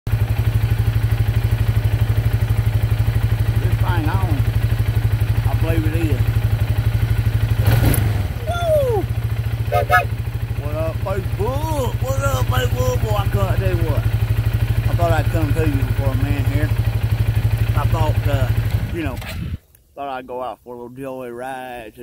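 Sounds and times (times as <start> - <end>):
atv engine running: 0.1 - 19.7.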